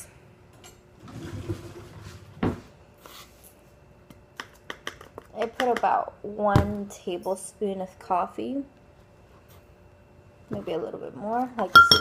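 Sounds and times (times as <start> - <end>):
drawer sliding rumble: 1.0 - 2.7.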